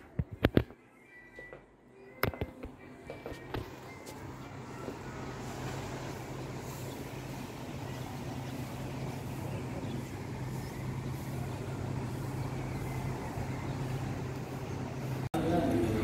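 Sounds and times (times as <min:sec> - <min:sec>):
low mechanical hum: 0:00.0 - 0:16.0
rushing background noise: 0:03.5 - 0:16.0.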